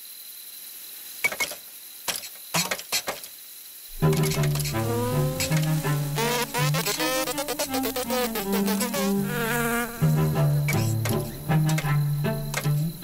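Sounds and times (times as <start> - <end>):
low sustained tones: 3.9 - 7.3, 9.1 - 13.0
cartoon insect buzzing: 3.9 - 13.0.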